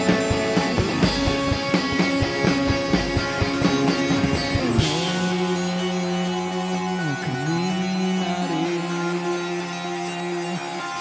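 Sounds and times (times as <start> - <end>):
electric guitar sustained notes: 0.0 - 11.0
live rock band playing: 0.0 - 11.0.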